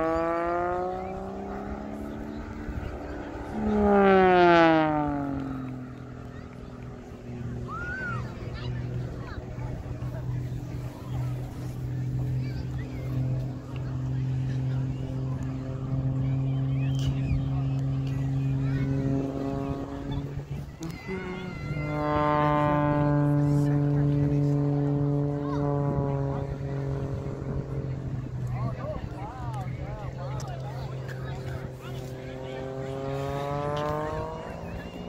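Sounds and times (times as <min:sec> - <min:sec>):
plane engine droning overhead: 0:00.0 - 0:35.0.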